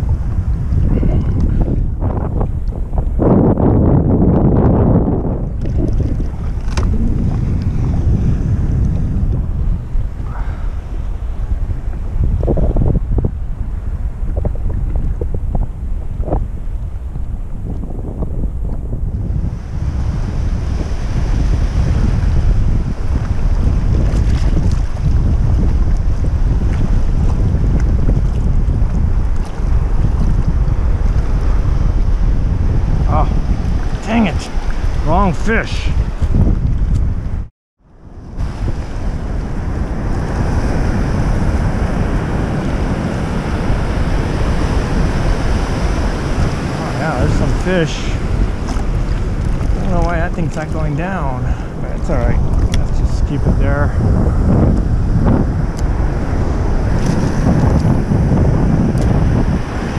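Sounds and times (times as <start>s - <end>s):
wind buffeting microphone: 0.0s - 59.9s
water lapping and splashing: 4.8s - 17.8s, 19.4s - 37.1s, 38.2s - 59.9s.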